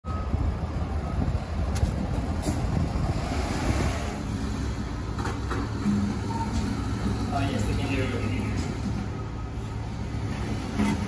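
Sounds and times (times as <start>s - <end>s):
heavy vehicle engine rumbling: 0.0s - 11.0s.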